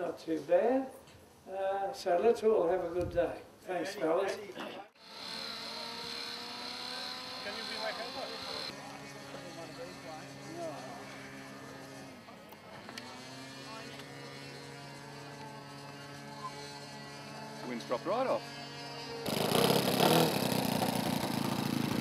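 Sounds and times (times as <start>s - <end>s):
small model engine idling: 5.0s - 12.2s, 13.0s - 22.0s.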